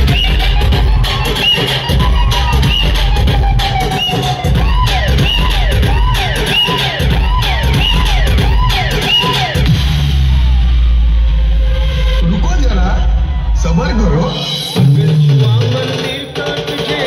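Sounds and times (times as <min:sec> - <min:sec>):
dj music with heavy bass: 0:00.0 - 0:17.0.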